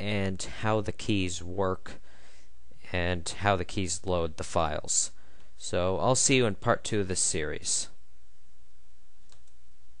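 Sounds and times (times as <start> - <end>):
recording hum and hiss: 0.0 - 10.0.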